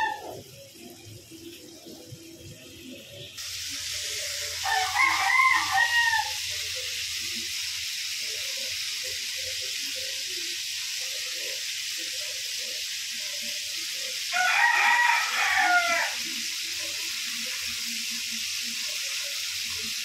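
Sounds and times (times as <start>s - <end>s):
rooster crowing: 0.0s - 0.4s, 4.5s - 6.6s, 14.3s - 16.4s
pork sizzling in frying pan: 0.0s - 20.0s.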